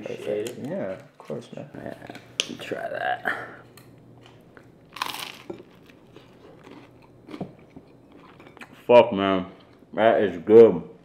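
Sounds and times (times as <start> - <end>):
chewing with small crunches: 3.7 - 8.8
crunchy bite into toasted bread: 5.0 - 5.9.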